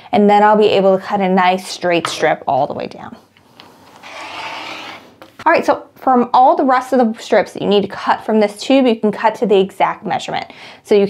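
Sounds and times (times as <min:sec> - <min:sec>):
rotary cutter slicing fabric: 0:04.0 - 0:05.0.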